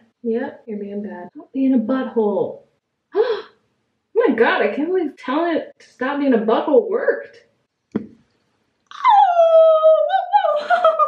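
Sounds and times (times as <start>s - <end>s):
woman's long high oooh: 8.9s - 11.0s.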